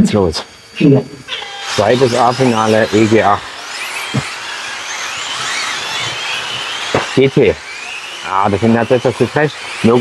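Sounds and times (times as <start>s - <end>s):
electric motors whining: 0.0s - 10.0s
tyres hissing on asphalt: 0.2s - 10.0s.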